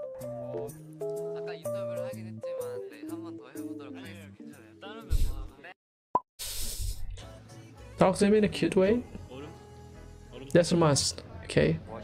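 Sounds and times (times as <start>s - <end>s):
quiet background music: 0.0s - 5.7s, 7.2s - 12.0s
burst of hiss: 6.4s - 7.1s.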